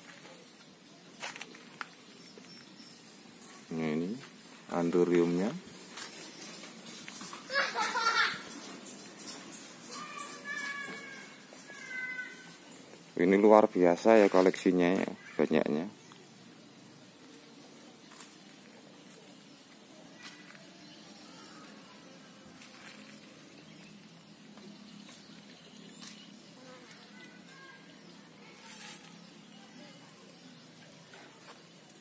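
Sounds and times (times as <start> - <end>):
flying insect buzzing: 26.0 - 27.9.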